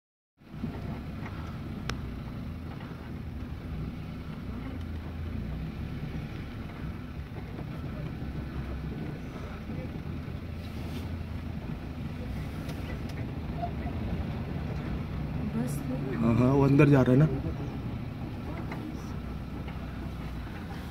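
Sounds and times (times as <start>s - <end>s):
jeep engine running at low revs: 0.4s - 20.9s.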